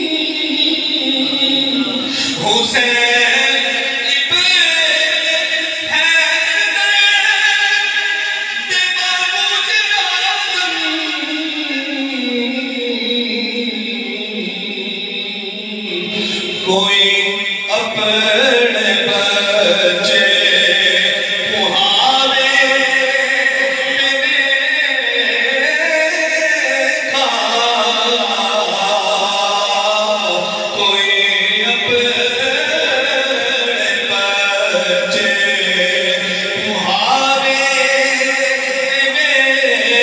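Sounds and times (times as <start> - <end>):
man chanting into a microphone: 0.0 - 40.0
man singing devotional poem: 0.0 - 40.0.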